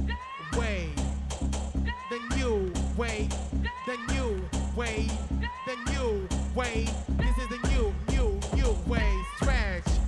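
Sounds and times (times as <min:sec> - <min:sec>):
dance track with heavy bass beat: 0:00.0 - 0:10.0.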